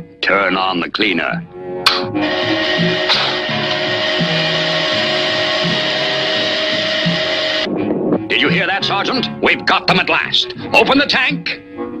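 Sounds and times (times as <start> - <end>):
background music with bass: 0.0 - 12.0
cartoon vacuum cleaner whirring: 1.9 - 7.7.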